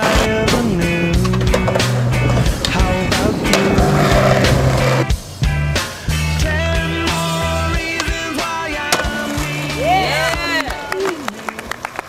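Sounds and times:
music with sustained bass: 0.0 - 10.6
skateboard rolling: 0.0 - 12.0
skateboard landing clack: 8.0 - 10.7.

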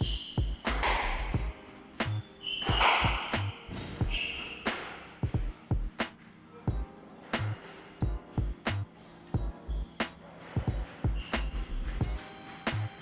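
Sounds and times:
squash ball hitting rackets and walls: 0.0 - 6.2
shoes squeaking on wooden floor: 0.0 - 13.0.

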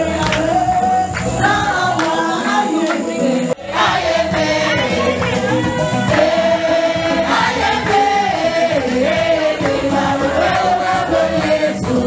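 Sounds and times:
group singing gospel song: 0.0 - 12.0.

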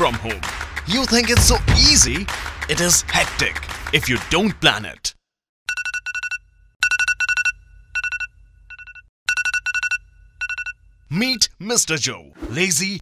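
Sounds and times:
phone alarm beeping: 5.7 - 11.0.

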